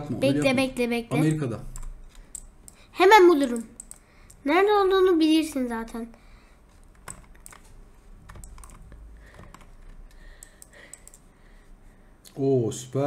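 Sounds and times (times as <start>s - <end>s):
computer keyboard tapping: 1.7s - 4.4s, 5.4s - 11.3s.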